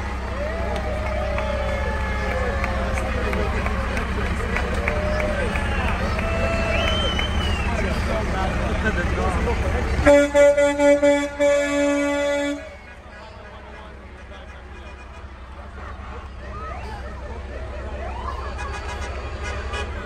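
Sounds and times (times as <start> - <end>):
vehicle engine running low: 0.0 - 20.0
voices nearby: 0.0 - 20.0
vehicle horn toots and blast: 10.0 - 12.9, 18.5 - 20.0.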